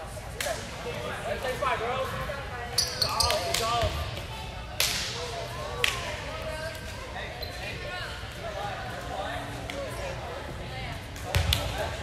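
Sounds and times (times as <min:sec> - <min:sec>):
volleyballs struck and bouncing: 0:11.2 - 0:11.9.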